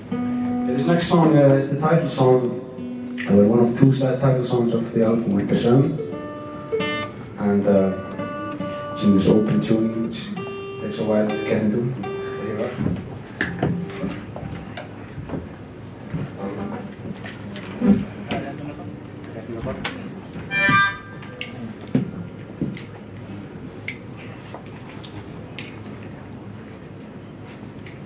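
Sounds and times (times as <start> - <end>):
acoustic guitar strings plucked: 8.0 - 14.8
loud harmonica note: 20.5 - 21.5.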